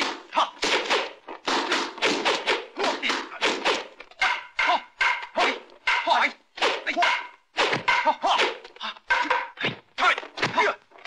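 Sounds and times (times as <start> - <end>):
fighters shouting: 2.7 - 9.0.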